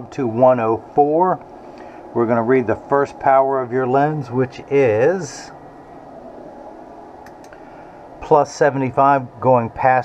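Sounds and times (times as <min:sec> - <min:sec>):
faint room hum: 0:00.0 - 0:10.0.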